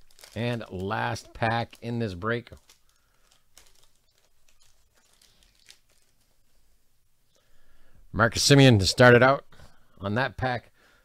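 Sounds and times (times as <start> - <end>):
foil wrapper crinkling and tearing: 0.0 - 6.4.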